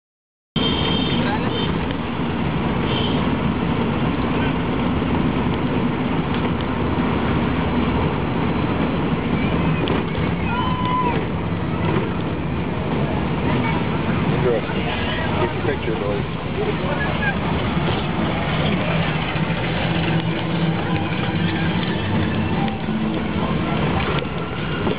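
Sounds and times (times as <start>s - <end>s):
car engine and road noise: 0.6s - 24.9s
indistinct voices: 8.8s - 24.9s.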